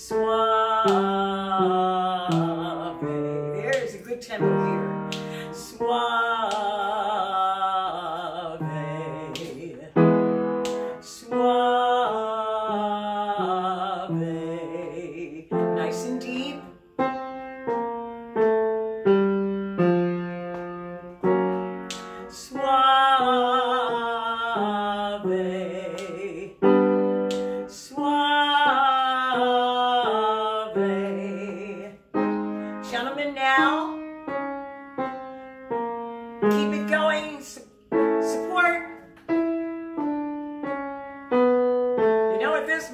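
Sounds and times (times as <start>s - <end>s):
woman singing vocal exercise: 0.0s - 16.7s, 21.9s - 32.1s, 32.7s - 34.1s, 36.4s - 39.1s, 42.3s - 42.9s
upright piano chords: 0.0s - 42.9s.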